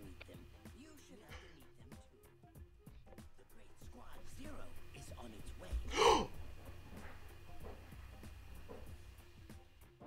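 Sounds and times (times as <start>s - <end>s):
man gasping in surprise: 5.9s - 6.4s.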